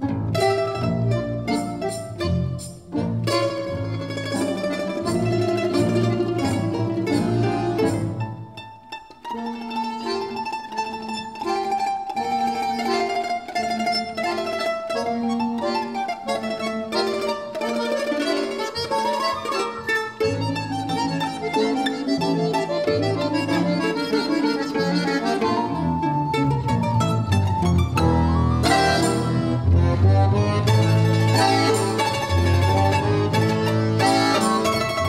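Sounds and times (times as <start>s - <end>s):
bass line: 0.0s - 8.6s, 22.8s - 35.0s
domra plucked melody: 0.0s - 35.0s
folk orchestra accompaniment: 0.0s - 35.0s.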